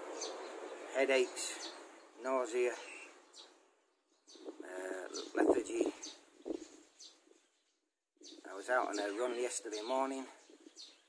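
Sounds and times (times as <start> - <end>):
birds calling: 0.0 - 11.0.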